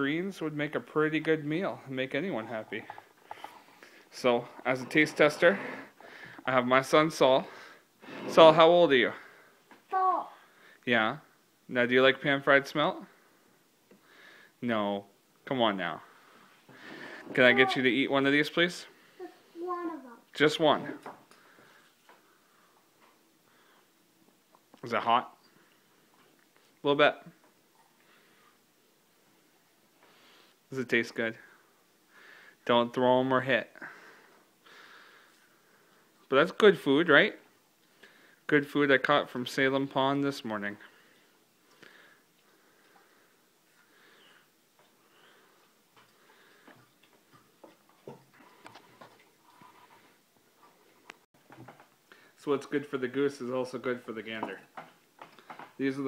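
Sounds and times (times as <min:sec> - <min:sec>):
child chewing crunchy food: 0:02.6 - 0:06.4, 0:44.8 - 0:51.2.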